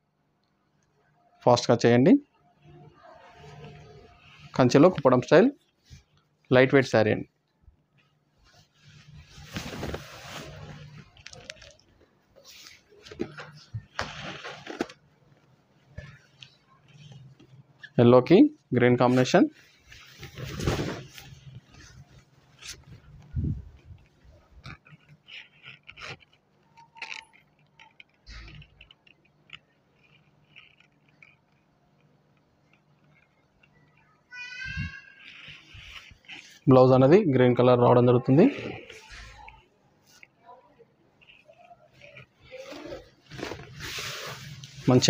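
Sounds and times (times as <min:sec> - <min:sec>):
silk fabric swishing and rustling: 0:08.6 - 0:11.2, 0:19.7 - 0:23.7, 0:42.5 - 0:45.0.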